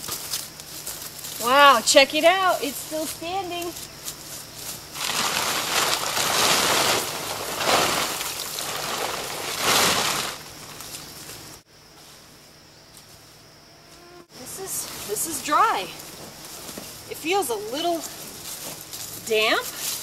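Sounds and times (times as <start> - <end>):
canvas tarp rustling: 0.0 - 11.6, 14.5 - 20.0.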